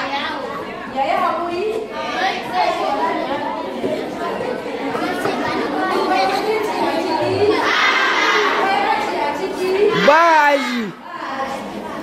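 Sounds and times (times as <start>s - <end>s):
girls chattering: 0.0s - 12.0s.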